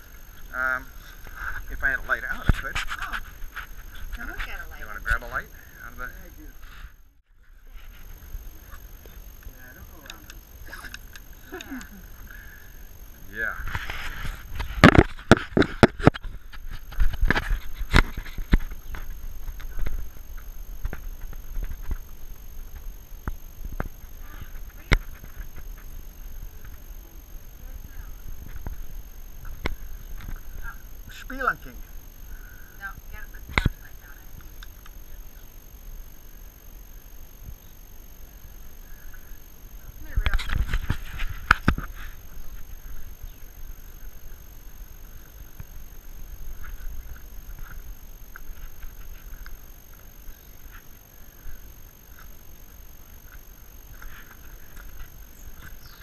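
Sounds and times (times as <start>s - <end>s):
camera knocking and scraping on rock: 2.2s - 4.6s, 13.6s - 22.1s, 40.1s - 42.7s.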